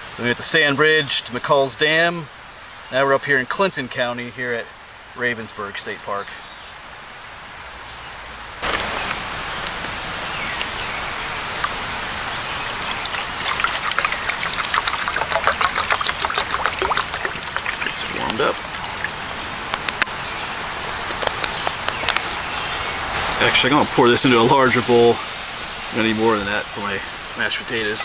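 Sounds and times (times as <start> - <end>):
water poured into pot: 12.4 - 19.3.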